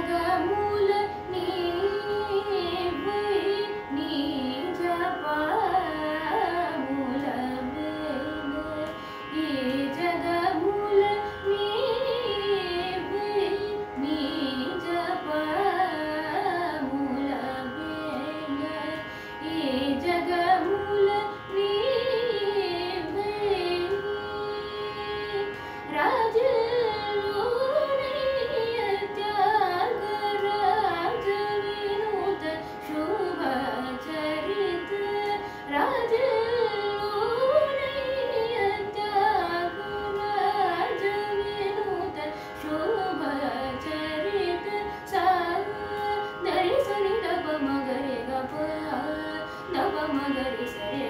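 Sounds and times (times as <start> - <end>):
woman singing ornamented melody: 0.0 - 51.0.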